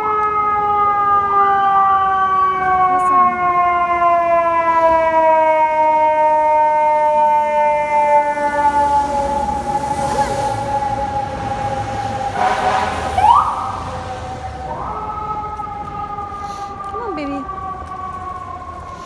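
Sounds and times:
emergency siren wailing: 0.0 - 19.0.

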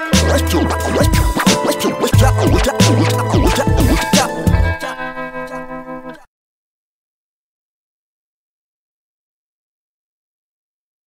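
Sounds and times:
turntable scratching: 0.0 - 5.7
hip hop beat: 0.0 - 6.2.

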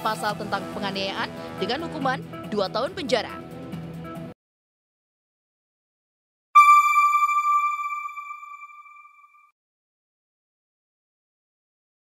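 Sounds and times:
bell-like chime: 6.6 - 9.4.

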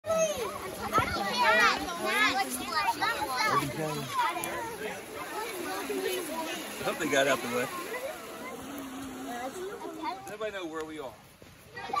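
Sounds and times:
children talking and calling out: 0.0 - 10.7, 11.3 - 12.0.

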